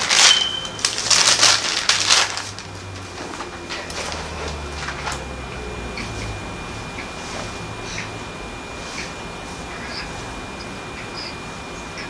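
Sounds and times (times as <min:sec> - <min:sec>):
book pages rustling: 0:00.0 - 0:05.3.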